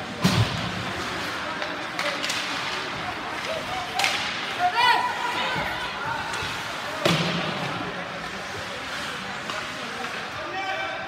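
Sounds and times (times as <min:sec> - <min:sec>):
arena noise: 0:00.0 - 0:11.0
sharp clacks of hockey sticks: 0:00.2 - 0:04.7.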